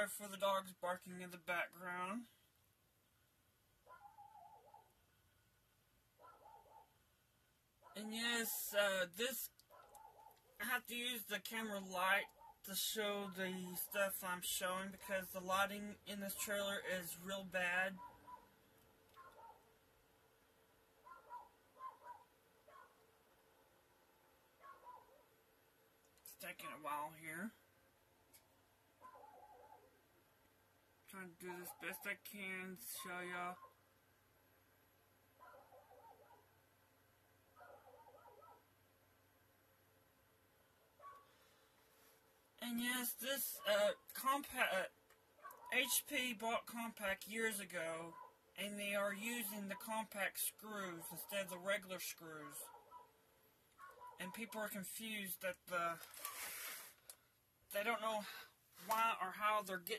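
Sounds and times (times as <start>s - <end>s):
dogs barking faintly: 3.8s - 5.0s, 6.2s - 7.0s, 9.5s - 10.6s, 16.3s - 19.8s, 21.0s - 23.1s, 24.6s - 25.4s, 29.0s - 30.0s, 37.5s - 38.7s, 41.0s - 42.2s, 45.4s - 46.1s, 48.0s - 48.4s, 52.5s - 54.5s.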